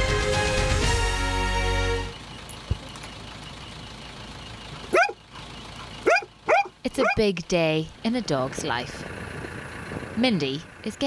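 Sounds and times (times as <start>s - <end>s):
faint outdoor background noise: 2.0s - 11.0s
large dog barking: 4.9s - 5.2s, 6.0s - 7.3s.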